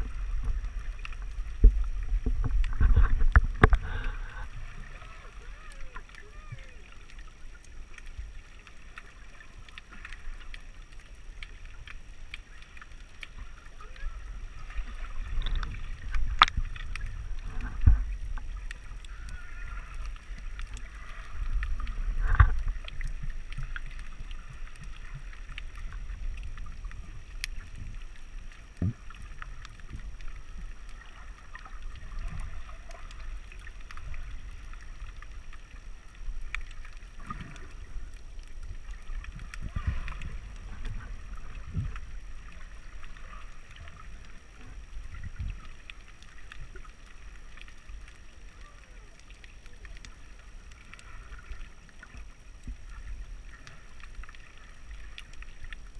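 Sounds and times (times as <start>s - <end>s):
low rumble of moving water: 0.0s - 55.9s
underwater thumps: 1.5s - 4.4s, 22.1s - 22.8s.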